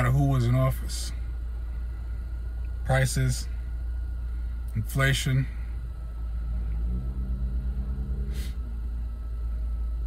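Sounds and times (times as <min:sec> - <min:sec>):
car cabin rumble: 0:00.0 - 0:10.0
low drone: 0:05.4 - 0:10.0.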